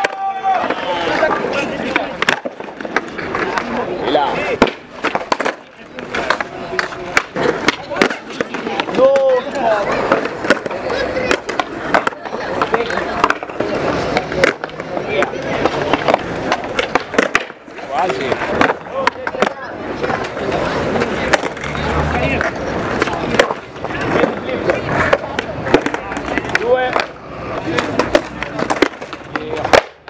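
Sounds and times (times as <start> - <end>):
skateboard tails popping and landing: 0.0 - 30.0
skateboard wheels rolling: 0.0 - 30.0
voices: 0.0 - 30.0.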